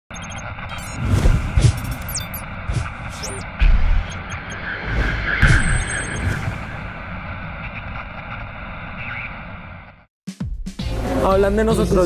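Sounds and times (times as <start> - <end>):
high electronic beeps: 0.1 - 7.0
whoosh: 0.7 - 7.7.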